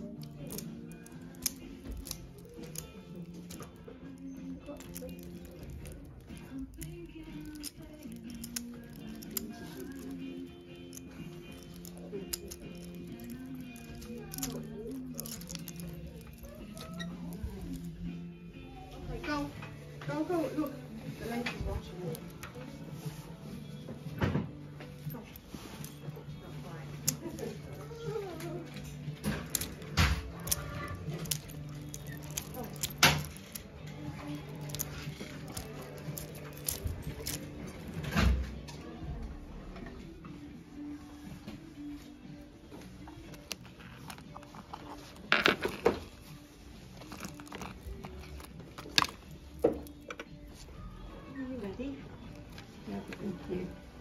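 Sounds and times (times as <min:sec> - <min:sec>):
background music: 0:00.0 - 0:54.0.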